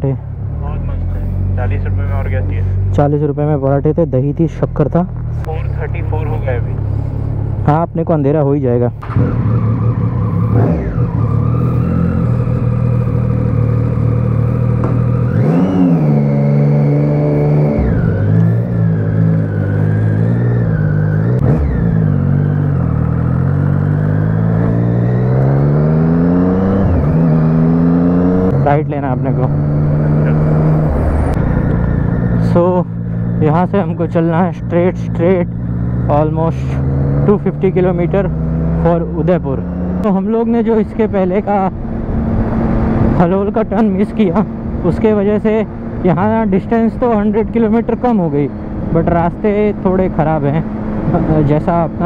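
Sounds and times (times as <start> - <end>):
motorcycle engine: 0.0 - 52.0.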